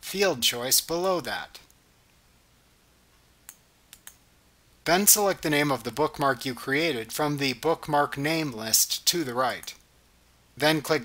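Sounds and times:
computer mouse clicks: 3.5s - 4.2s.

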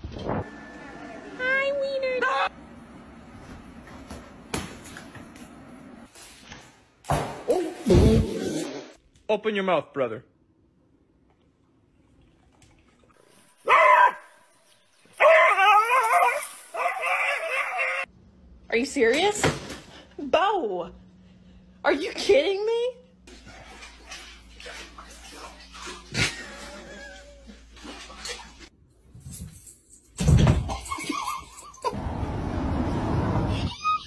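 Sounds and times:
puppy barking: 13.6s - 14.3s.

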